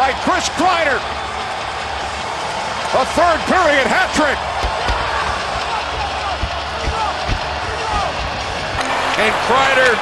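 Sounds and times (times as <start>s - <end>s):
arena crowd roaring: 0.0s - 10.0s.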